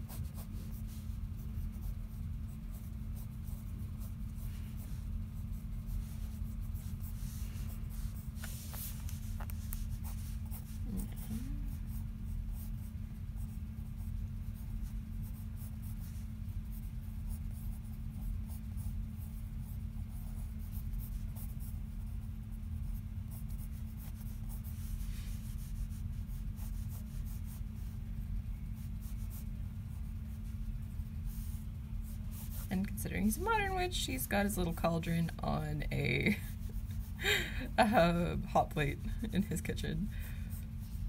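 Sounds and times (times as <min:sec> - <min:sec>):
pencil scratching on paper: 0:00.0 - 0:37.2
steady low hum: 0:00.0 - 0:41.0.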